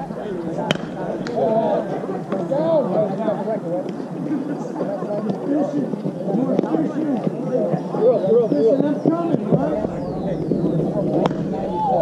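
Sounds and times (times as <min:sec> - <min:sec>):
voices chattering and calling: 0:00.0 - 0:12.0
bat cracking ball: 0:00.6 - 0:01.4, 0:11.1 - 0:11.6.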